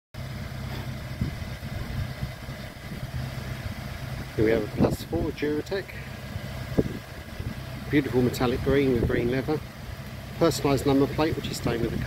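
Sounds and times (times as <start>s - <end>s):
car engine idling: 0.2s - 12.0s.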